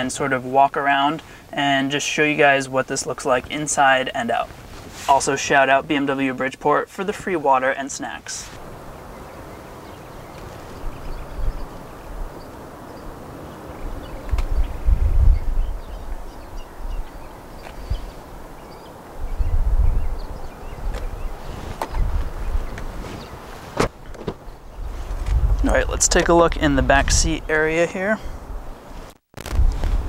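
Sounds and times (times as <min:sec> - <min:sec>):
wind buffeting microphone: 0:08.6 - 0:30.0.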